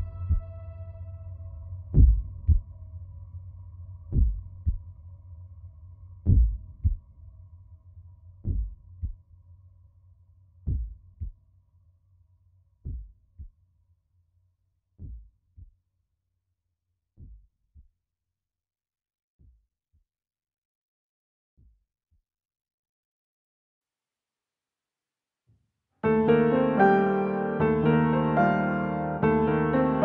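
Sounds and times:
heartbeat thumps: 0.0s - 0.5s, 1.9s - 2.6s, 4.1s - 4.8s, 6.3s - 7.0s, 8.4s - 9.2s, 10.7s - 11.4s, 12.8s - 13.5s, 15.0s - 15.7s.

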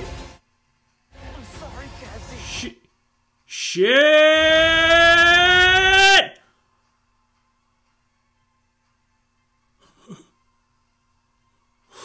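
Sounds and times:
man yelling: 3.5s - 6.4s.

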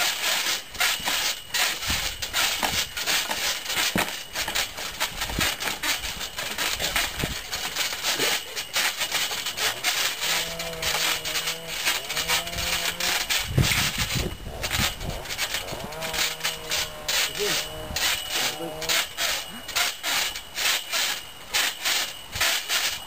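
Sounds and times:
trampoline creaking: 0.0s - 23.0s.

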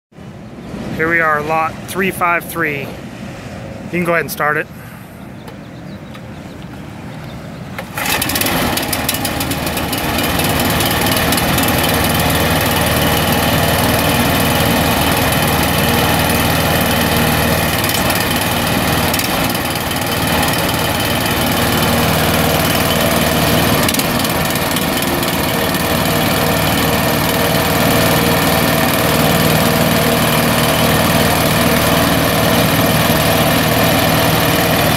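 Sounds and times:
single-cylinder engine starting and running: 7.7s - 34.9s.

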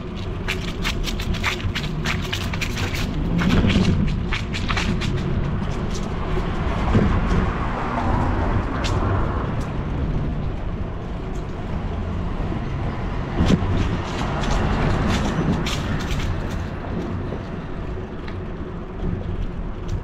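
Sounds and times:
car passing: 0.0s - 20.0s
low traffic rumble: 0.0s - 20.0s.

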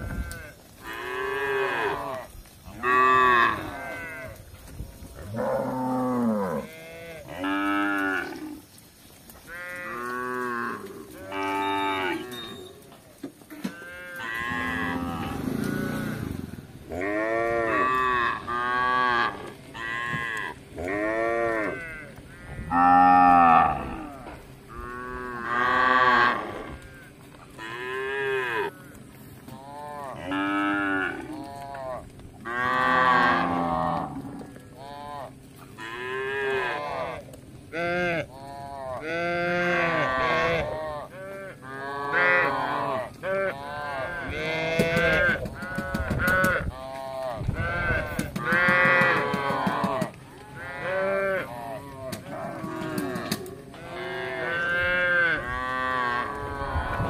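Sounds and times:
cattle mooing: 0.0s - 4.4s, 5.2s - 8.6s, 9.4s - 12.8s, 13.6s - 57.0s.

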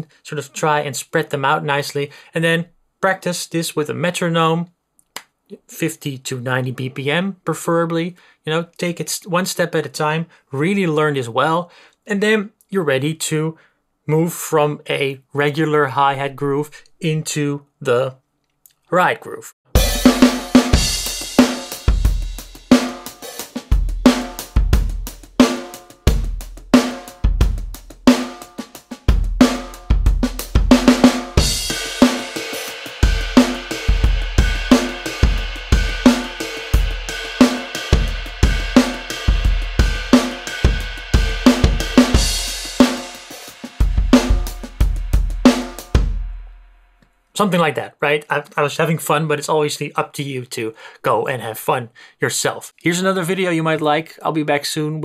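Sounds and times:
ride cymbal groove: 19.7s - 46.5s
drum beat with kick snare hi-hat: 19.7s - 46.6s.

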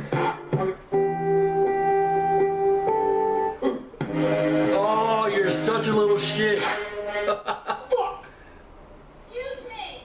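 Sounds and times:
plucked guitar chords: 0.0s - 7.3s.

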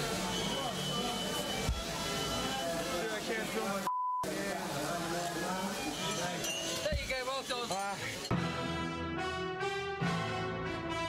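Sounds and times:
censor bleep: 3.9s - 4.3s
background music: 8.3s - 11.0s.

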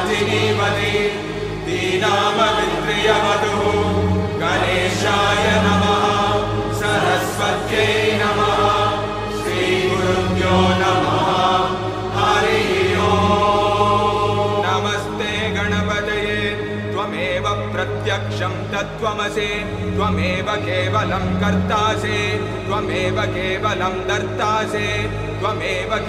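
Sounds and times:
steady low drone: 0.0s - 26.0s
mantra chanting: 9.8s - 26.0s.

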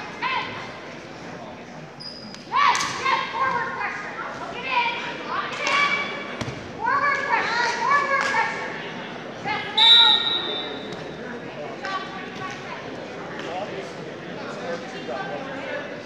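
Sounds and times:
people shouting in gym: 2.5s - 8.8s
referee's whistle: 9.8s - 10.9s.

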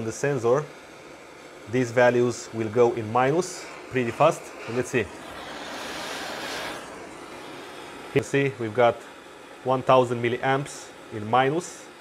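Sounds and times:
faint steady hiss: 0.0s - 12.0s
person blowing breath: 4.6s - 7.9s.

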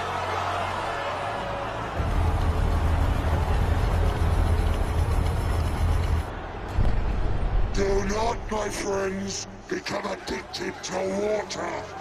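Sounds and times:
music: 0.0s - 10.8s
crowd: 0.0s - 12.0s.

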